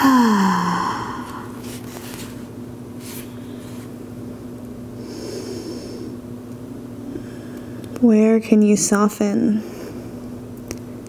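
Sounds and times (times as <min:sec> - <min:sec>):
woman sighing: 0:00.0 - 0:01.6.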